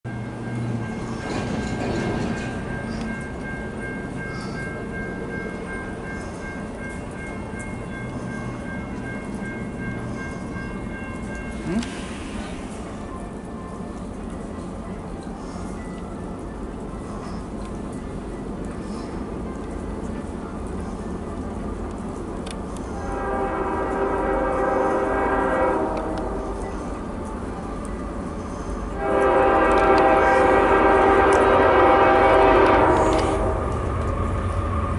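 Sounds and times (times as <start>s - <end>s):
freight train rumble: 0.0s - 34.9s
locomotive air horn blast: 22.8s - 26.6s, 28.9s - 33.7s.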